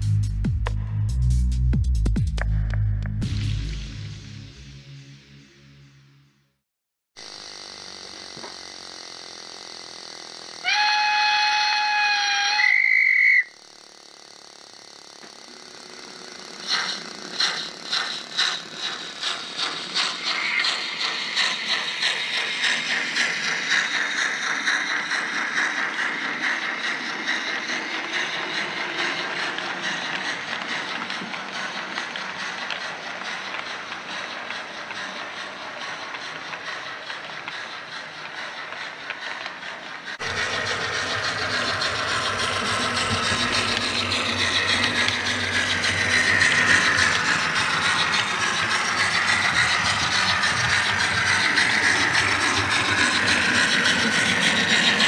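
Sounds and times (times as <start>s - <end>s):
steam locomotive chuffing: 7.2s - 55.0s
steam locomotive whistle: 10.6s - 13.6s
steady steam hiss: 15.4s - 55.0s.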